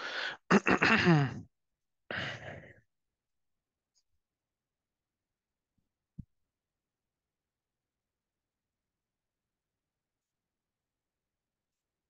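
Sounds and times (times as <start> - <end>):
person sighing: 0.0 - 1.5, 2.1 - 2.8.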